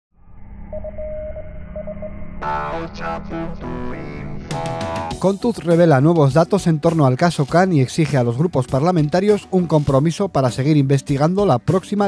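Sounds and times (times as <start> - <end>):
low hum: 0.1 - 4.7
electronic phone beep: 0.7 - 2.2.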